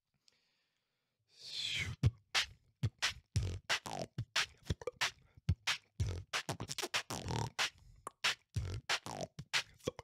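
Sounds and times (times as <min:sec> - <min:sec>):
beatboxing into a microphone: 0:01.5 - 0:10.0.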